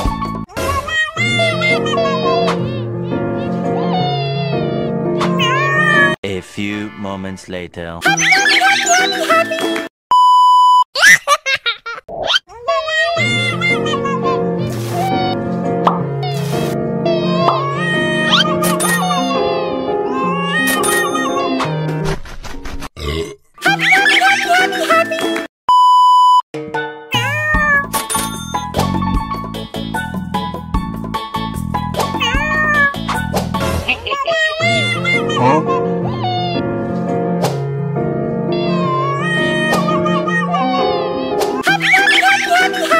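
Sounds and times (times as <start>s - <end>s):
children's background music: 0.0s - 7.3s, 8.0s - 9.9s, 13.0s - 22.0s, 26.6s - 33.8s, 34.6s - 37.6s, 38.4s - 42.9s
cat crying meows: 3.7s - 6.2s, 17.1s - 21.6s, 27.2s - 27.9s, 32.2s - 33.0s, 34.2s - 36.6s, 38.5s - 42.1s
cartoon burp sound effect: 23.0s - 23.4s
background music: 34.7s - 42.9s.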